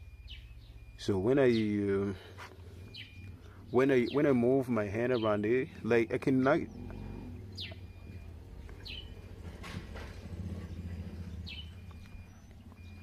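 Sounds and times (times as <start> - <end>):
bird chirping: 0.0 - 13.0
low steady rumble: 5.8 - 13.0.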